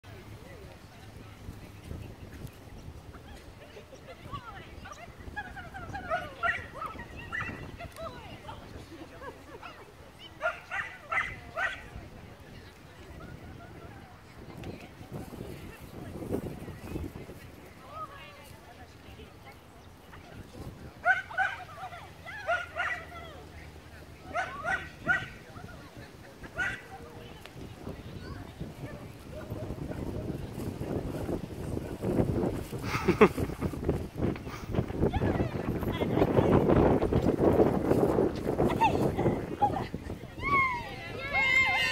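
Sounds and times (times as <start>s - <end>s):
dog yipping and barking: 10.4s - 11.8s, 22.4s - 23.0s, 24.3s - 25.3s.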